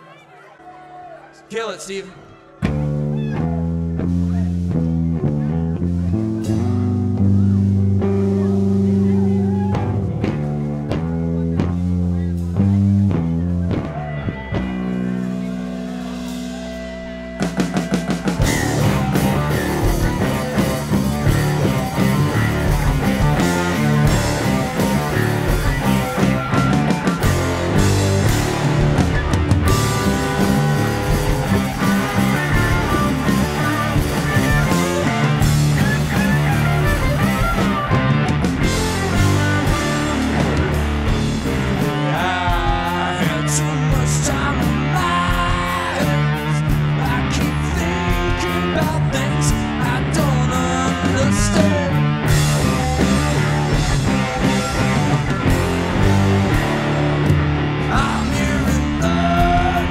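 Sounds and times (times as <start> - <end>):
live blues-rock band: 2.5 - 59.9.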